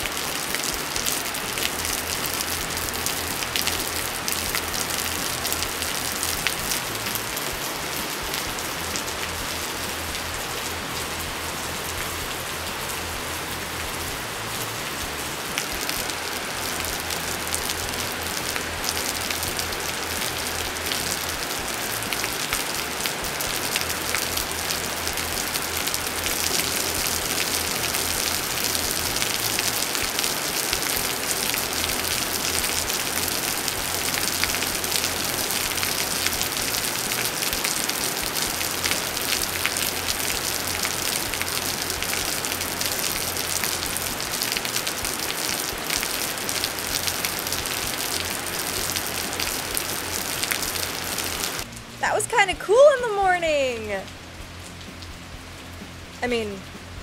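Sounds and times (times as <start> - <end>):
steady rain falling: 0.0 - 57.0.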